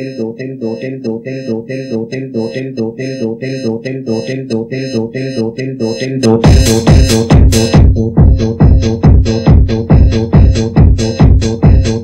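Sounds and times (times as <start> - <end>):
electronic dance music: 6.0 - 12.0.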